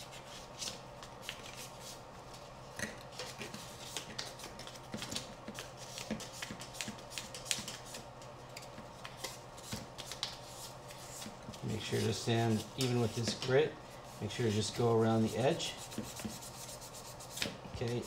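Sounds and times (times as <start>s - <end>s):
sandpaper rubbing: 14.2s - 18.0s.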